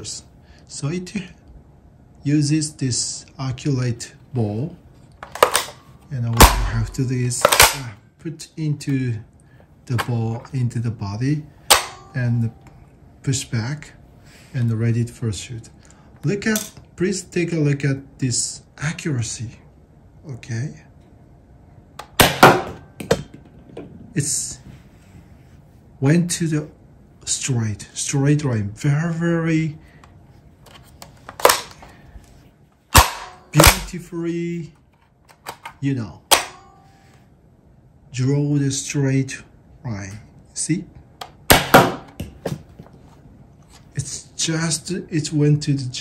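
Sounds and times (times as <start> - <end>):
loud spring-powered shot: 33.0 - 33.9.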